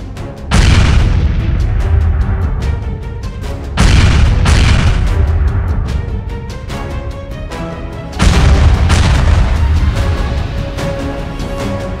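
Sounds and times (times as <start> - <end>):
background music: 0.0 - 12.0
crash and boom sound effect: 0.5 - 2.2, 3.8 - 5.8.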